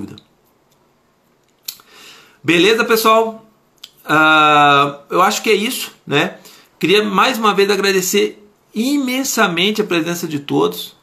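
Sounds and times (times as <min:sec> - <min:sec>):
man speaking: 0:00.0 - 0:00.3, 0:02.4 - 0:11.0
mouth click: 0:01.4 - 0:01.9, 0:03.8 - 0:04.0
intake of breath: 0:01.8 - 0:02.4.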